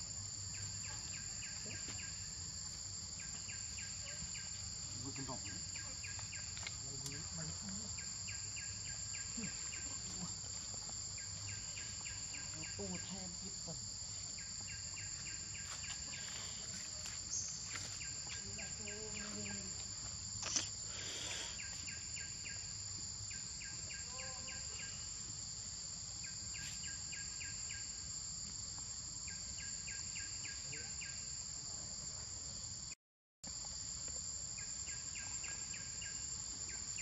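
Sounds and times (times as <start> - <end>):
high-pitched insect drone: 0.0 - 37.0
rapid insect chirps: 0.0 - 37.0.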